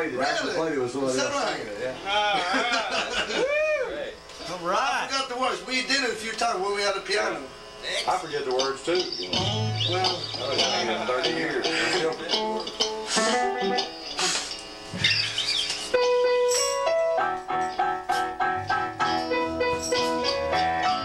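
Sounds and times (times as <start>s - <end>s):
voices: 0.0s - 13.5s
loose guitar playing: 8.0s - 21.0s
electric guitar song with steady beat: 8.4s - 21.0s
harmonica holding a note: 9.0s - 14.6s, 15.2s - 21.0s
piano: 15.9s - 21.0s.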